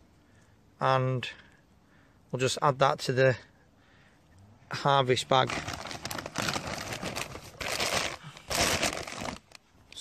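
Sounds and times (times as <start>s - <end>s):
plastic bag rustling and crinkling: 5.2s - 10.0s.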